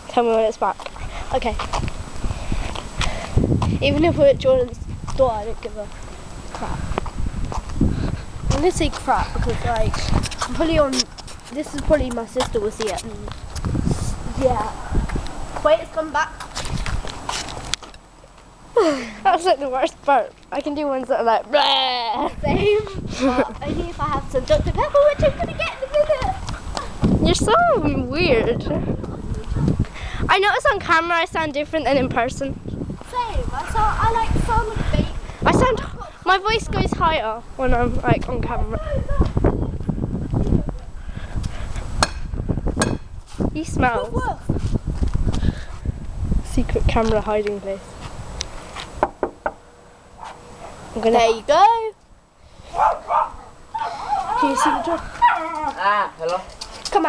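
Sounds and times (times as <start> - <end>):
footsteps on pavement: 0.2 - 18.6, 22.6 - 30.0, 37.8 - 49.6, 54.2 - 57.0
women laughing: 21.6 - 23.7
knocking on door: 49.0 - 49.6.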